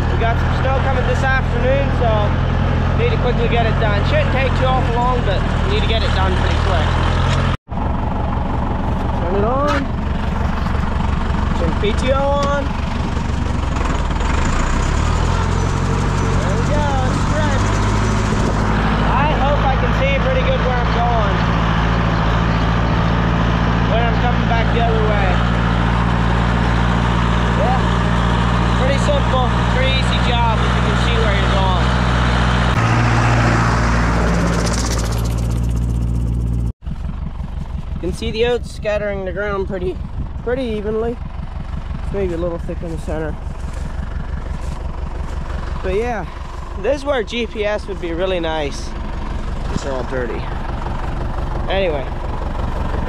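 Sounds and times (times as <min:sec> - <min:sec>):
tractor diesel engine running: 0:00.0 - 0:53.0.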